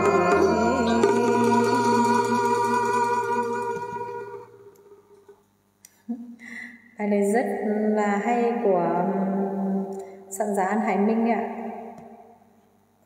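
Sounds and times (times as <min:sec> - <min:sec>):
instrumental backing music: 0:00.0 - 0:04.8.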